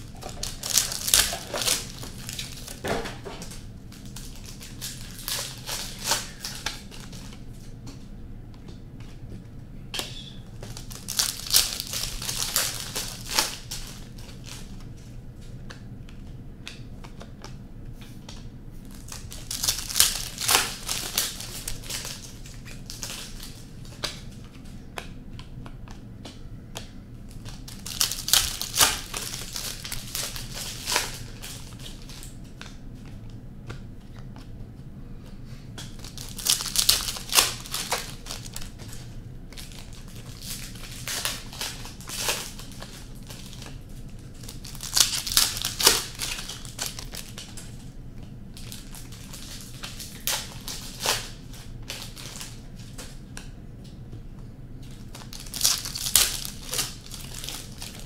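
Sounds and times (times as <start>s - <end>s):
card wrappers tearing and crinkling: 0.0s - 7.4s, 10.6s - 14.8s, 18.8s - 24.4s, 27.3s - 32.4s, 35.9s - 47.7s, 48.6s - 53.2s, 54.9s - 58.0s.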